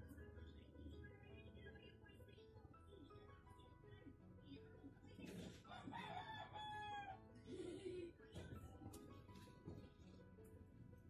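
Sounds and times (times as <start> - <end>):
quiet background music: 0.0 - 11.0
rooster crowing: 5.7 - 7.2.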